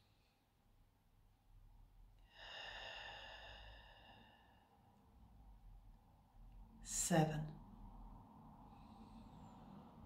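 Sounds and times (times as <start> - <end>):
woman breathing out: 2.2 - 4.8.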